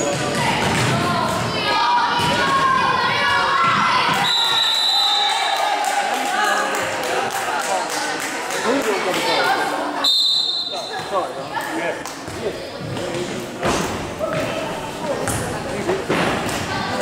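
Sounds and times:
players and spectators shouting: 0.1 - 6.4.

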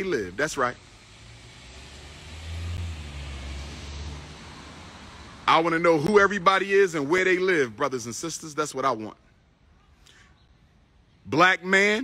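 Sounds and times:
vehicle passing by: 0.0 - 7.7.

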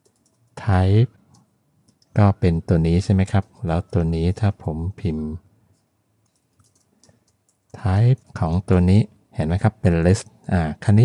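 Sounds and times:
keyboard typing: 0.0 - 2.3, 5.7 - 8.4.

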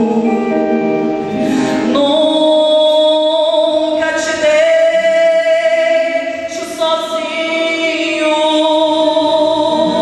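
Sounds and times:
gospel singing over church pa: 0.0 - 10.0.

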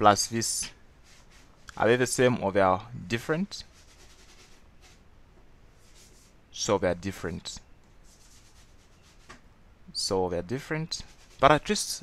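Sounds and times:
low background hiss: 0.0 - 12.0
faint rubbing scratchy noise: 0.3 - 2.4, 3.1 - 5.1, 5.8 - 9.4, 10.5 - 12.0.

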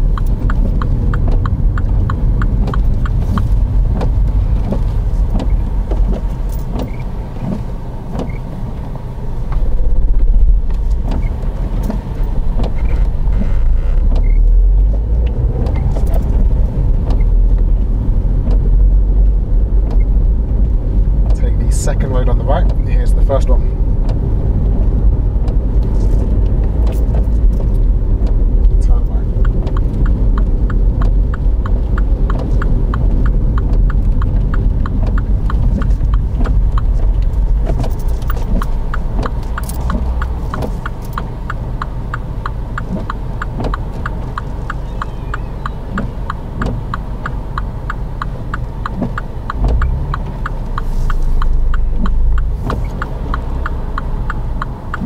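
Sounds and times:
car engine idling: 0.0 - 55.0
turn signal ticking: 0.0 - 55.0.

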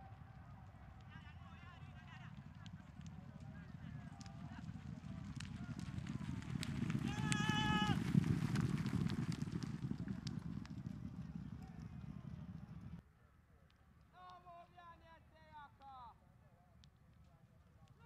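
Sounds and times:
horses galloping on dirt: 0.0 - 13.0.

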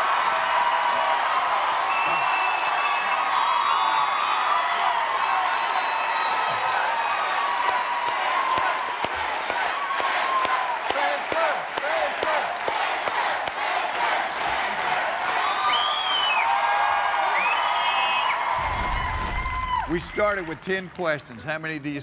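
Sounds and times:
audience cheering and applauding: 0.0 - 22.0
whoops and shouts: 1.8 - 8.7, 15.4 - 20.1.

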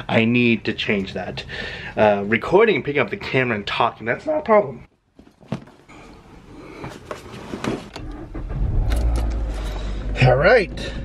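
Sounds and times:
handling clicks and rustling: 5.1 - 6.2
car engine starting and idling: 8.0 - 11.0.

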